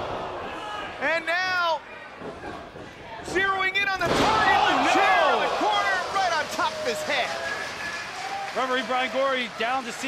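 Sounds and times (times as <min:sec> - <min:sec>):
crowd shouting: 0:04.3 - 0:07.3.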